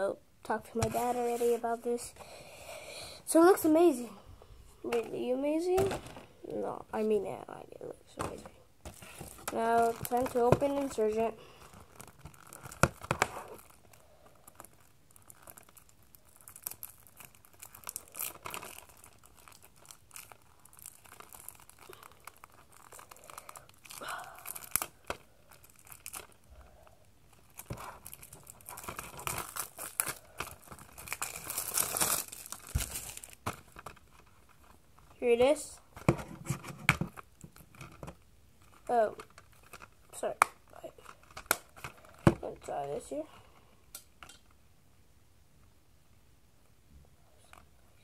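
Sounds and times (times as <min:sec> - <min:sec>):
plastic wrapping crackling and tearing: 0:08.1 - 0:43.2.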